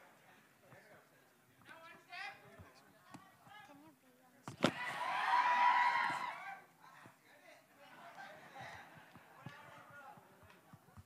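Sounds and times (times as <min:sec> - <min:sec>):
crowd shouting and cheering: 0:04.7 - 0:06.7.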